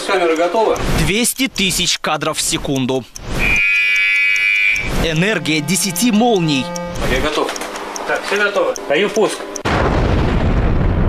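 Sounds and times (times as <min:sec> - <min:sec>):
high-pitched electronic tone: 0:03.2 - 0:09.6.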